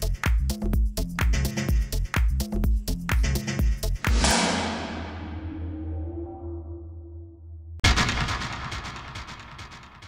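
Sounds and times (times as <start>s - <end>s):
echoing hit sound effect: 4.0s - 7.1s.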